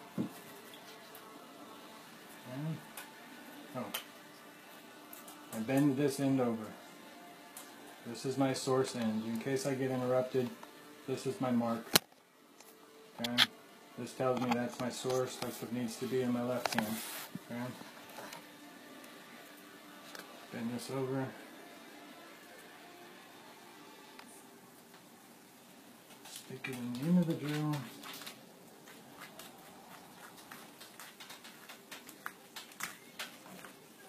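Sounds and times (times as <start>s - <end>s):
clicks and taps of copper wire: 30.4s - 33.7s.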